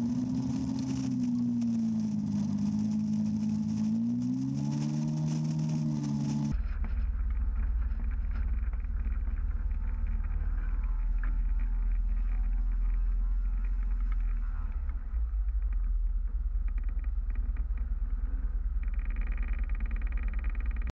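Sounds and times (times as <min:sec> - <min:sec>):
piston engine rumbling at low power: 0:00.0 - 0:20.9.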